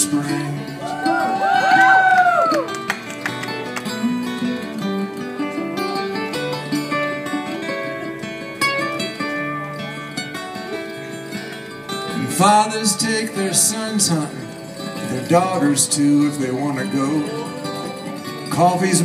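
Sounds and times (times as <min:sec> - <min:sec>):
strummed acoustic guitar: 0:00.0 - 0:19.0
plucked mandolin: 0:02.7 - 0:19.0.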